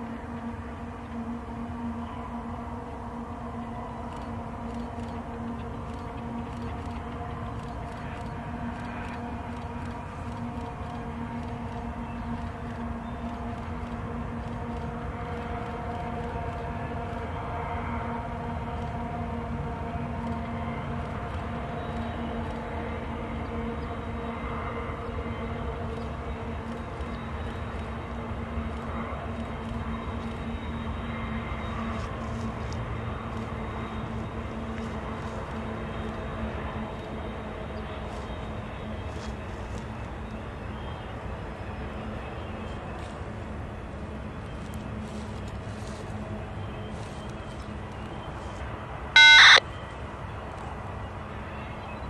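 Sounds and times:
distant diesel locomotives droning: 0.0 - 52.0
crow cawing: 49.2 - 49.6.

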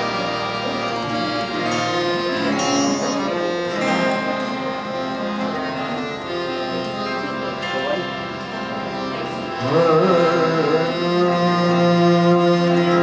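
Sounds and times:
harmonium notes held: 0.0 - 13.0
plucked string instrument melody: 0.0 - 13.0.

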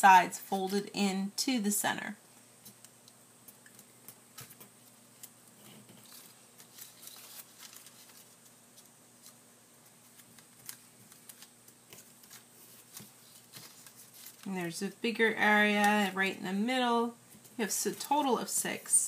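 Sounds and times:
paper being folded and creased: 3.7 - 14.5.

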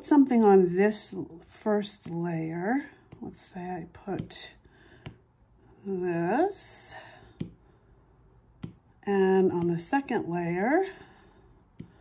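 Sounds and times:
stylus tapping on glass screen: 8.6 - 8.8.

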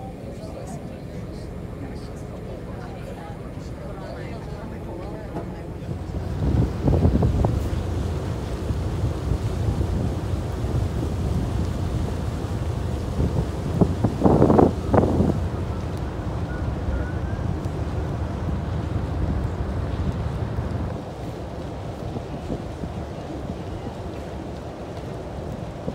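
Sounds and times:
boat engine rumble: 0.0 - 25.9
wind buffeting microphone: 4.0 - 25.9.

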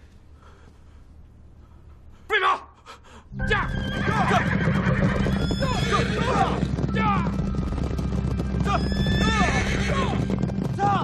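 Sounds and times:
horses galloping: 3.4 - 11.0
horses whinnying: 3.7 - 10.9
riders shouting: 5.7 - 7.4.

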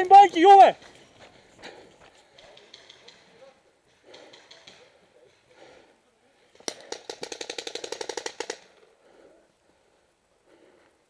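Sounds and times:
paintball marker firing rapid shots: 6.6 - 8.7.

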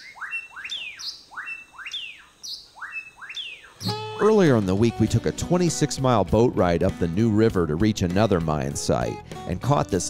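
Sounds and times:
bird whistling call: 0.0 - 4.2.

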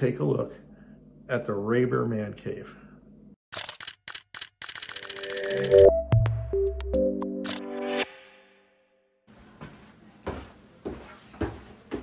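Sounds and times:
camera shutter clicks: 3.5 - 5.8, 7.4 - 7.6.

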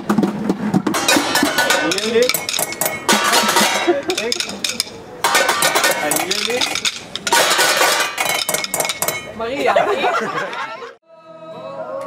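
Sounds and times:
sticks drumming on metal pots: 0.9 - 9.4.

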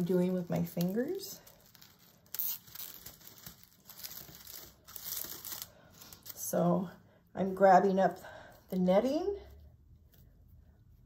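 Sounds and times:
mesh netting crinkling: 0.0 - 6.4.

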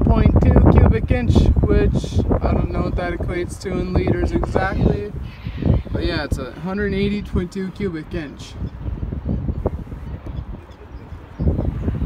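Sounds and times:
microphone handling noise: 0.0 - 6.5, 8.6 - 10.6
wind rumble: 0.0 - 12.0.

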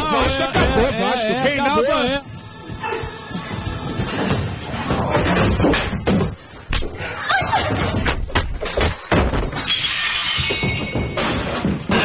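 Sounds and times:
loud shattering crashes: 8.6 - 12.0.

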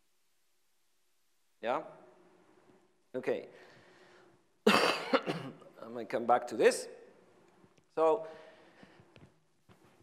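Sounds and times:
person coughing harshly: 4.6 - 5.7.

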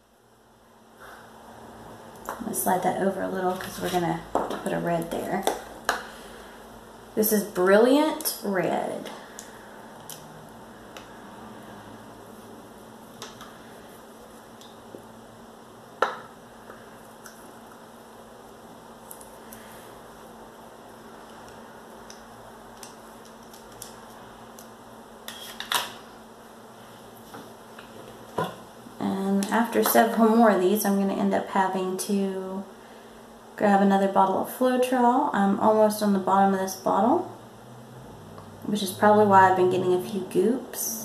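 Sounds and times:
woman speaking: 2.3 - 5.6, 7.2 - 9.2, 29.0 - 32.7, 33.6 - 37.4, 38.6 - 41.0.

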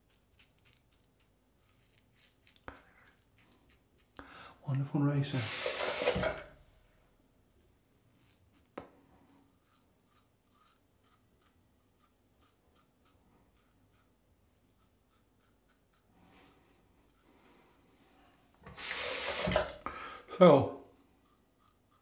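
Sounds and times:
razor scraping stubble: 9.5 - 17.7, 20.9 - 22.0.

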